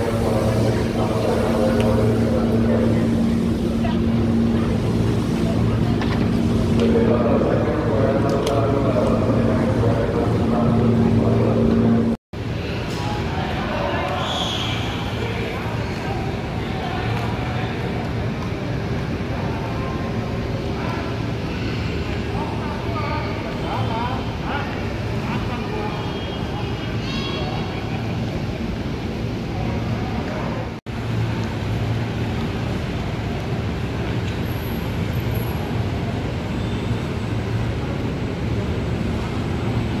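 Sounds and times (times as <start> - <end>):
low hum: 0.0 - 12.2
people talking: 0.0 - 30.8.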